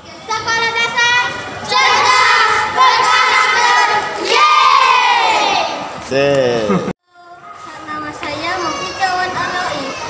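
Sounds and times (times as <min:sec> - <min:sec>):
children shouting a cheer: 0:01.7 - 0:05.9.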